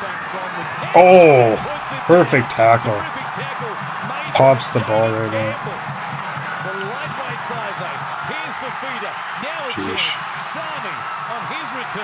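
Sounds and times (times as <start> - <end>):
stadium crowd hum: 0.0 - 12.0
commentator talking: 0.5 - 5.7, 6.7 - 12.0.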